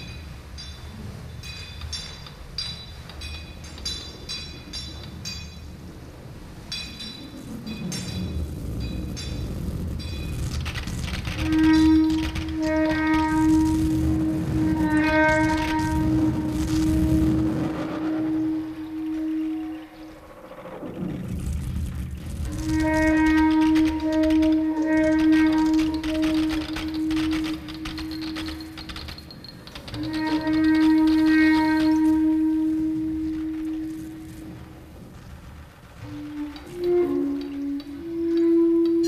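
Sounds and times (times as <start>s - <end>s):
low rumbling drone: 0.0s - 39.0s
clarinet long low note: 11.4s - 20.3s, 30.0s - 34.9s, 36.0s - 39.0s.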